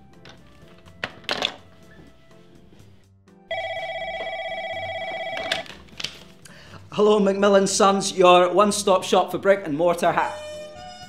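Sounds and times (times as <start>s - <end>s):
telephone ringing: 3.5s - 5.8s.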